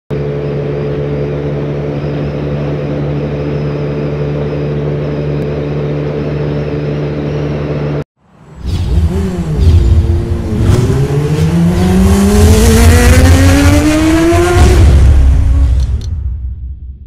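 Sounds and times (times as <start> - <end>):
scooter engine humming: 0.1 - 16.1.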